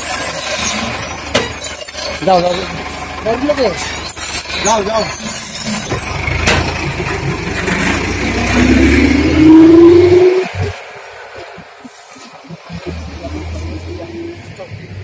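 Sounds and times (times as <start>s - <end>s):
vehicle engine rumbling: 0.0s - 15.0s.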